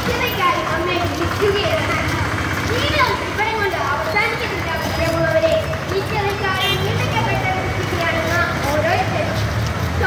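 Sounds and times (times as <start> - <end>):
low vehicle engine hum: 0.0 - 10.0
people calling and talking: 0.0 - 10.0.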